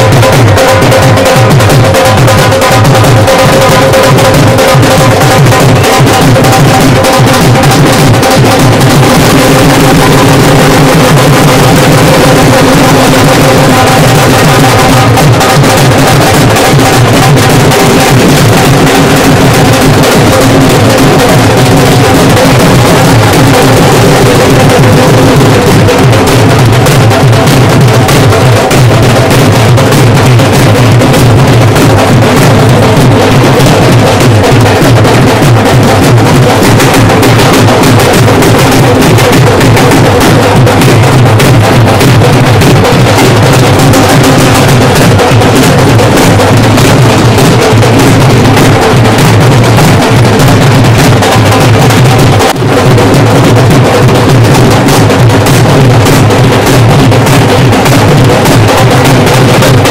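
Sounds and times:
drums beaten in dense rhythm: 0:00.0 - 0:59.9.

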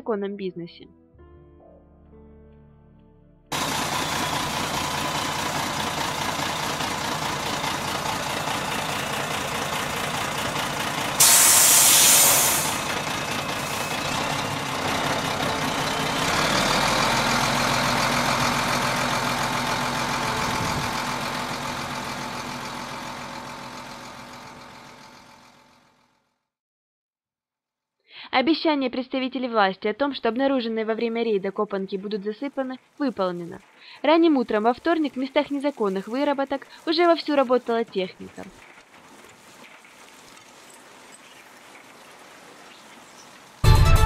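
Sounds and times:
diesel truck engine running: 0:03.5 - 0:26.1
burst of hiss: 0:11.2 - 0:12.9.

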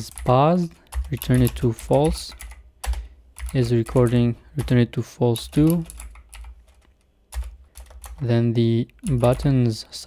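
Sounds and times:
computer keyboard typing: 0:00.0 - 0:04.8, 0:05.4 - 0:08.3, 0:08.9 - 0:09.6.

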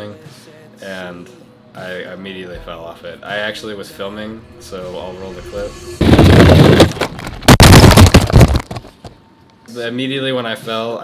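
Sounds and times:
clattering and scraping: 0:04.6 - 0:09.1
crash onto deck: 0:04.8 - 0:09.1.

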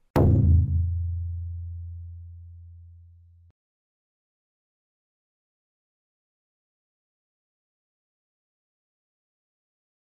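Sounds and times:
deep bass tone: 0:00.2 - 0:03.2.

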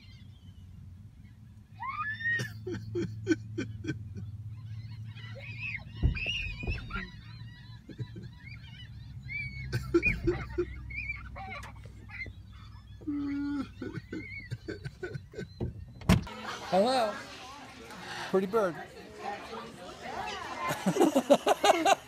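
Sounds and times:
fowl squawking and honking: 0:04.5 - 0:15.1
knocks: 0:06.0 - 0:07.2.

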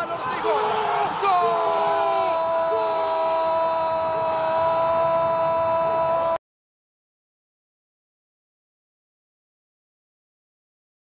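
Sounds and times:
commentator shouting goal: 0:00.0 - 0:06.4
crowd noise: 0:00.0 - 0:06.4.

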